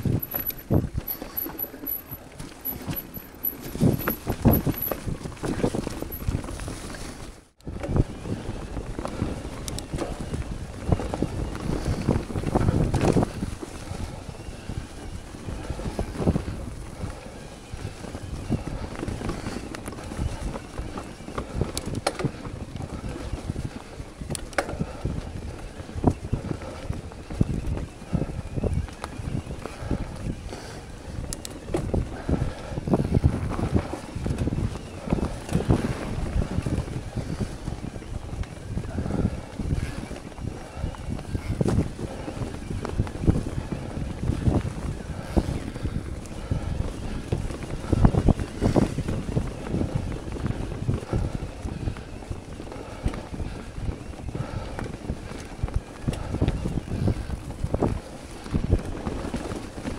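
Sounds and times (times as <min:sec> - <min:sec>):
bike clicks and rattles: 0:00.0 - 0:59.9
tyres rolling on dirt and leaves: 0:00.0 - 0:59.9
wind rushing over microphone: 0:00.0 - 0:59.9.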